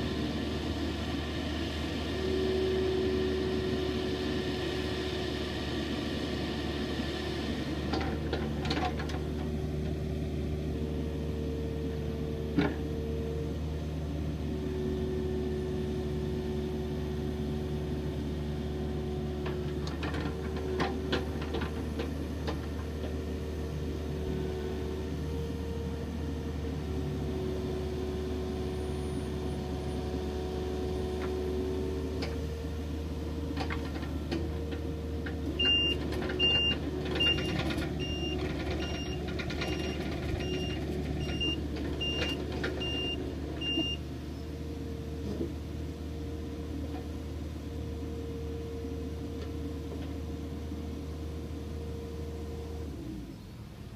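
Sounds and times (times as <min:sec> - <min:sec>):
excavator diesel engine running: 0:00.0 - 0:53.9
travel alarm beeping: 0:35.6 - 0:39.2.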